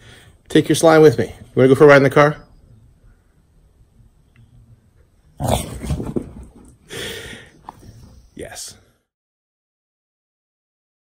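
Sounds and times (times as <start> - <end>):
dog giving rough vocal burst: 5.4 - 6.8.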